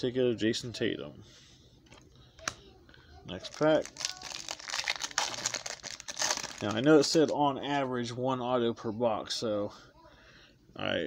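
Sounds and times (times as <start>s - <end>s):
foil wrapper crinkling: 3.4s - 7.3s.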